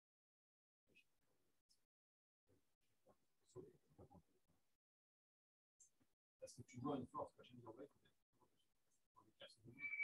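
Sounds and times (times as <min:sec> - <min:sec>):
high-pitched tone: 0:09.8 - 0:10.0.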